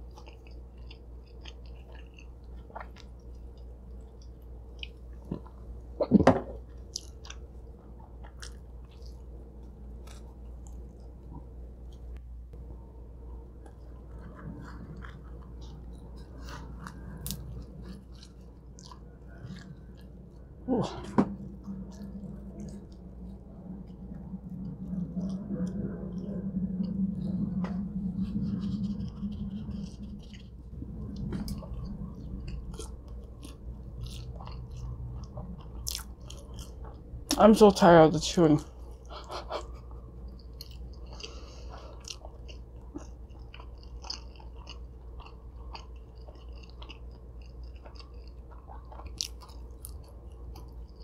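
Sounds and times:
close chewing of pizza: 0:00.0 - 0:12.2, 0:13.1 - 0:51.0
low humming voice: 0:19.2 - 0:33.0.

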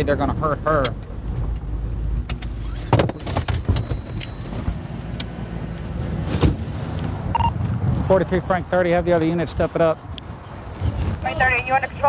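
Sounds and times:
car engine and road rumble: 0:00.0 - 0:12.0
knocks and rattles: 0:02.3 - 0:04.8
short beep: 0:07.3 - 0:07.6.

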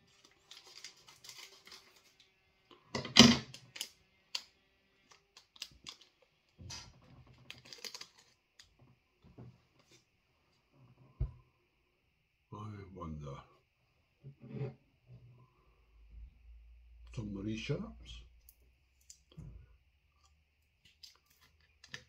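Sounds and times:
snack packet crinkling: 0:00.0 - 0:02.3, 0:03.5 - 0:06.3, 0:07.4 - 0:08.7, 0:20.9 - 0:22.0.

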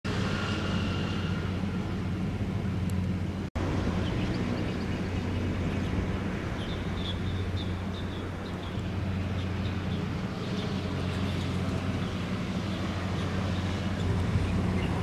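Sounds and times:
steady low city hum: 0:00.1 - 0:15.0.

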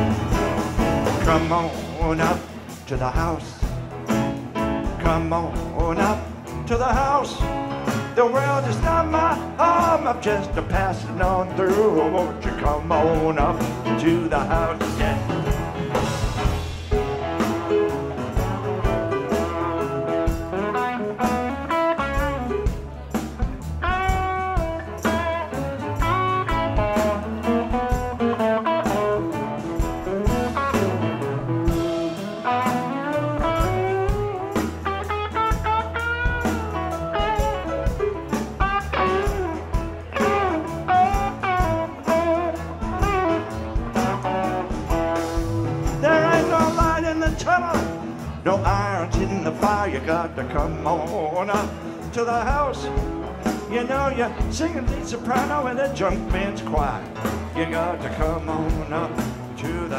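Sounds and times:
bass guitar: 0:00.0 - 0:59.9
drums: 0:00.0 - 0:59.9
electric guitar: 0:00.0 - 0:59.9
keyboards: 0:00.0 - 0:59.9
melodic lead line bending notes: 0:00.0 - 0:59.9.

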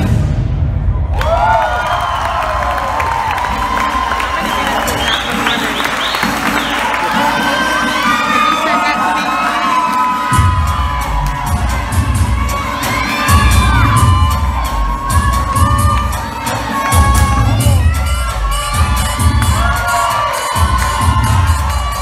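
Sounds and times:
audience cheering and whooping: 0:01.0 - 0:22.0
dance music with heavy bass beat: 0:03.4 - 0:22.0.

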